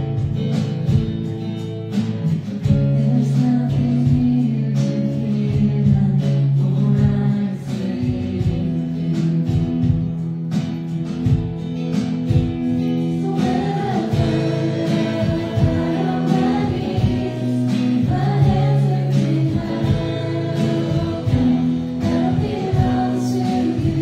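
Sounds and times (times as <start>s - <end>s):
acoustic guitar: 0.0s - 24.0s
voices singing together: 3.2s - 9.0s, 13.0s - 24.0s
steady beat: 9.6s - 24.0s.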